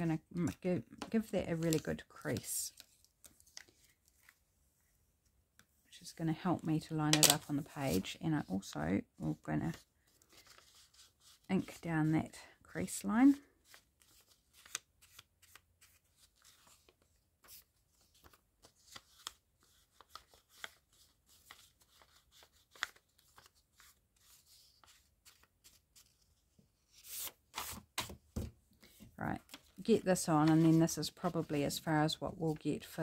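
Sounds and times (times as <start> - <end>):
paper rustling: 0.4 - 4.4, 9.6 - 11.9, 13.4 - 33.0.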